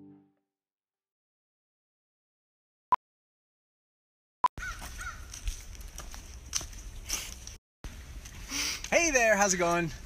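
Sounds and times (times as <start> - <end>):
bird calling: 4.6 - 5.3.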